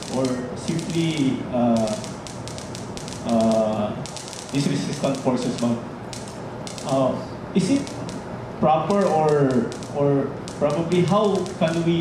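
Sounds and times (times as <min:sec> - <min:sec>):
light tapping clicks: 0:00.0 - 0:07.0, 0:07.6 - 0:08.2, 0:08.9 - 0:12.0.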